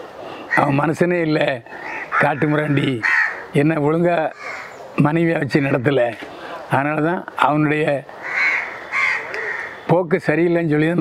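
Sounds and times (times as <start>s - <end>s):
man speaking in rough voice: 0.5s - 4.4s, 5.0s - 8.1s.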